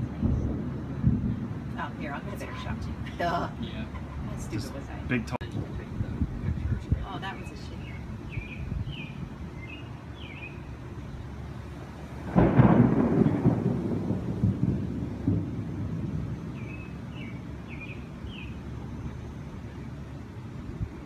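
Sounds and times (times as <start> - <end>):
thunderclap: 0.0 - 3.0, 5.4 - 7.1, 12.0 - 17.8.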